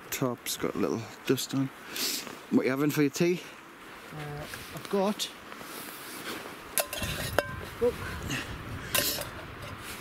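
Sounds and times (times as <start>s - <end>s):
metal cookware clinking: 6.8s - 7.6s, 8.9s - 9.4s.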